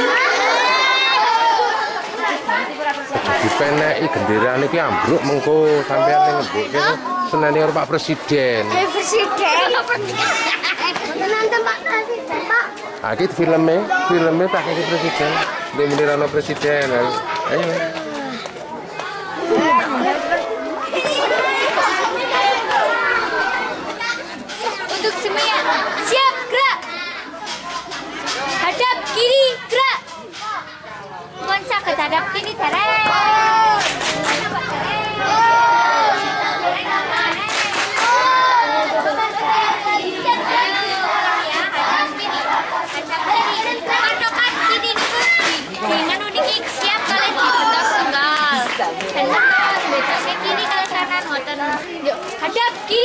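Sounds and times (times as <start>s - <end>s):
children talking and calling out: 0.0s - 53.0s.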